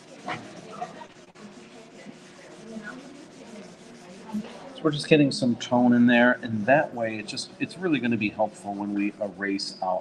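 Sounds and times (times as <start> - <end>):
tissue scrubbing on paper: 0.0 - 4.7.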